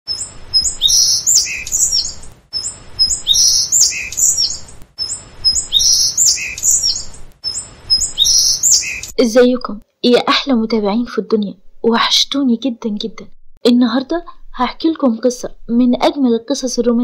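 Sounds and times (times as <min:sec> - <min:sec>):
bird chirps and whistles: 0:00.1 - 0:09.2.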